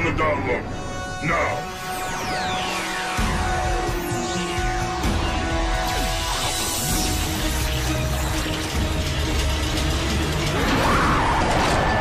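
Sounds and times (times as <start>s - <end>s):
geared machine ratcheting clatter: 7.2s - 12.0s.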